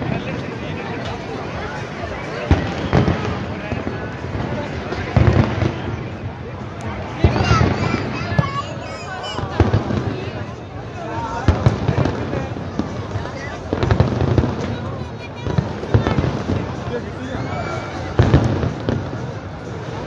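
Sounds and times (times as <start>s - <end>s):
fireworks bangs: 0.0s - 17.3s, 18.0s - 20.0s
people talking: 0.0s - 20.0s.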